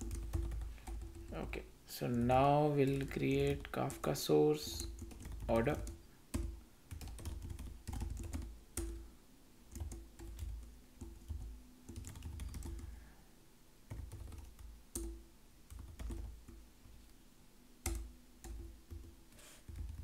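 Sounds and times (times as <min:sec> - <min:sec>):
typing on computer keyboard: 0:00.0 - 0:09.0, 0:09.7 - 0:12.9, 0:13.9 - 0:16.6, 0:17.8 - 0:20.0.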